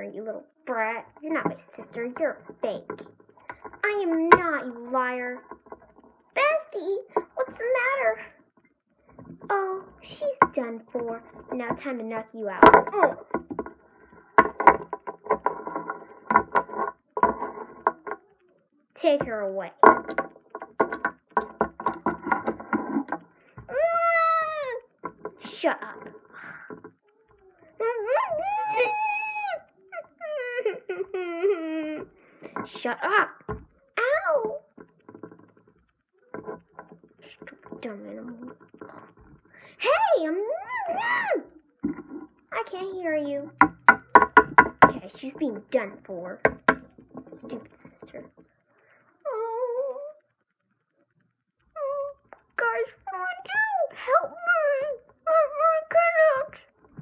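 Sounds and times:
child making wavering whines: 23.7 - 24.9, 26.4 - 32.2, 39.8 - 41.7, 49.2 - 50.3, 51.8 - 55.9
high-pitched wail: 27.9 - 31.3.

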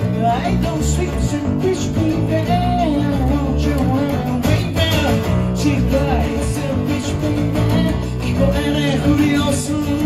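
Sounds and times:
acoustic guitars playing: 0.0 - 10.0
man singing: 0.0 - 10.0.

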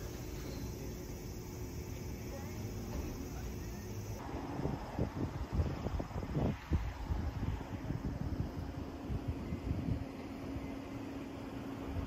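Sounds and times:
outdoor low rumble: 0.0 - 12.0
steady low machine hum: 0.0 - 12.0
wind buffeting microphone: 4.2 - 10.4.

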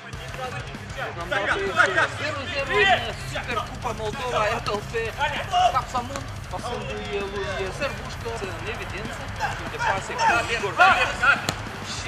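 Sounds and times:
man's voice: 0.0 - 12.0
football kick thud: 11.4 - 11.8.

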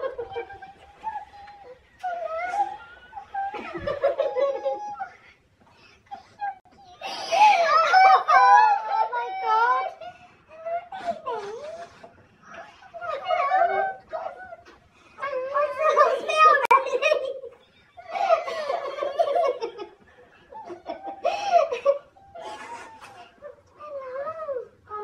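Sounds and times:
woman and girls laughing: 0.0 - 5.4, 15.6 - 23.5.

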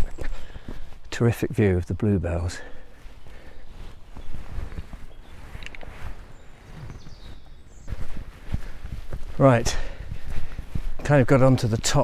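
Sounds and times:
footsteps on woodland path: 0.0 - 12.0.

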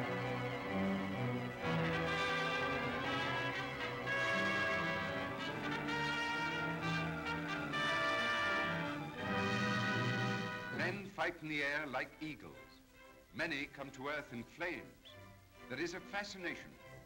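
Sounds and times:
orchestral brass chords: 0.0 - 11.2.

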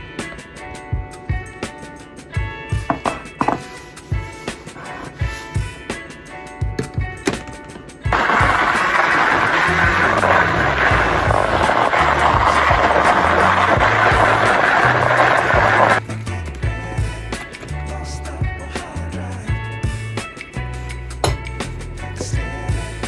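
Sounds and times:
background music with bass: 0.0 - 23.0
blender motor running: 8.1 - 16.0.

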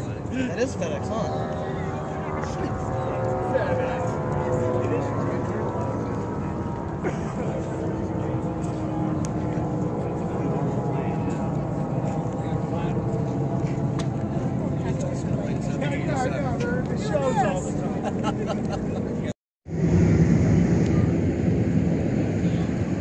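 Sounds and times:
jet engines rumbling: 0.0 - 23.0.

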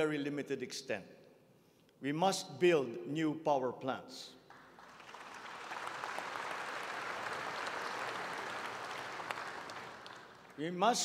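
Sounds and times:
audience applause: 4.5 - 10.6.

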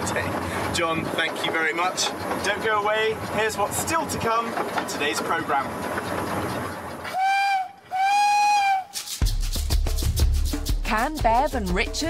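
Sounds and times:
steam locomotive running: 0.0 - 9.6
steam whistle blasts: 7.1 - 9.2
background music with low beat: 8.9 - 12.0.

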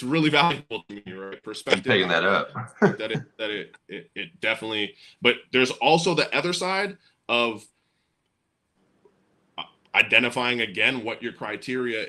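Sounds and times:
brief vocal sound: 0.0 - 7.6
man speaking: 0.0 - 7.6, 10.0 - 12.0.

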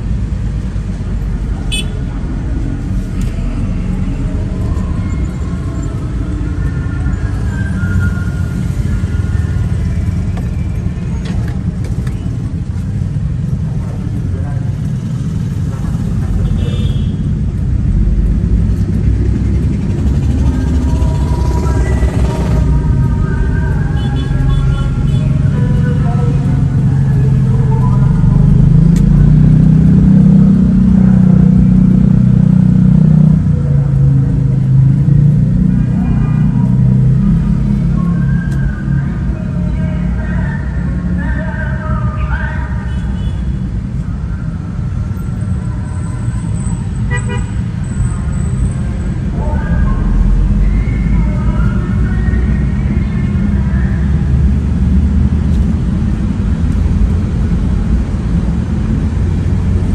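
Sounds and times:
car engine and road rumble: 0.0 - 59.9
person singing: 20.3 - 28.7.

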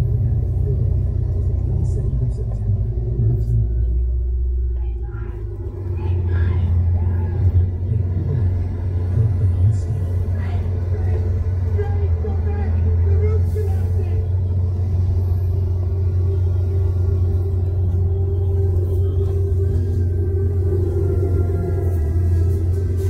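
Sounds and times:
car driving on road: 0.0 - 23.0.

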